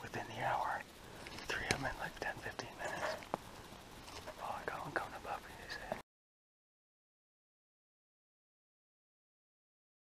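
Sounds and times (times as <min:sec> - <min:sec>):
man whispering: 0:00.0 - 0:03.4, 0:04.1 - 0:06.0.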